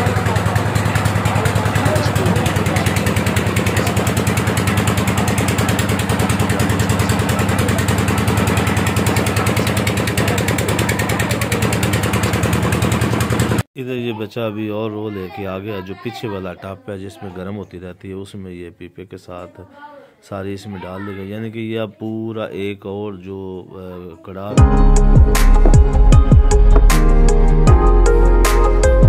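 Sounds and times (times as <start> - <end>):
engine running: 0.0 - 13.6, 24.6 - 28.6.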